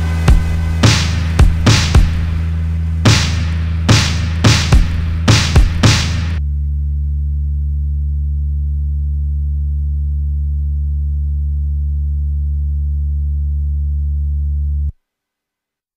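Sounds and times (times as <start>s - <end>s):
steady low bass tone: 0.0s - 15.0s.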